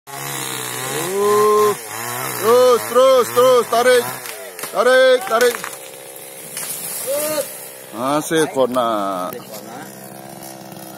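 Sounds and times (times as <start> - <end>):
chainsaw engine idling and revving: 0.1 - 10.9.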